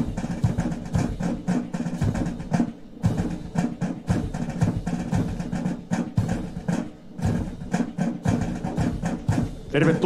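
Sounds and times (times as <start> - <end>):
military march music: 0.0 - 10.0
steady drum beat: 0.0 - 10.0.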